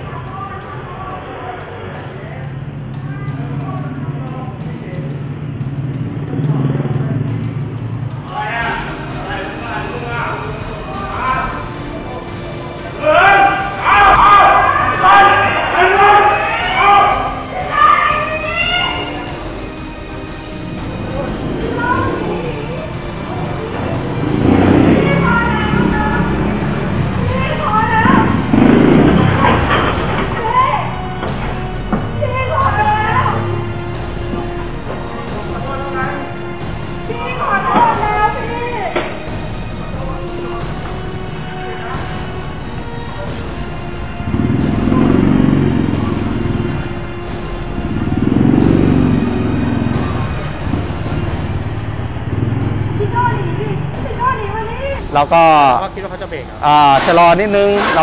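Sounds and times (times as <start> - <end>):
motorcycle engine: 0.0 - 56.5
background music: 0.0 - 58.0.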